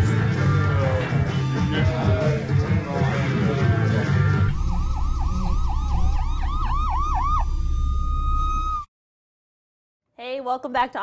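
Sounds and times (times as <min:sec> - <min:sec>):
song music: 0:00.0 - 0:08.6
siren yelping: 0:04.4 - 0:08.9.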